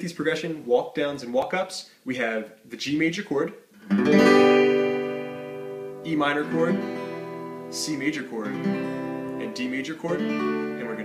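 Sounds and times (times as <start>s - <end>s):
acoustic guitar chord ringing: 3.9s - 11.0s.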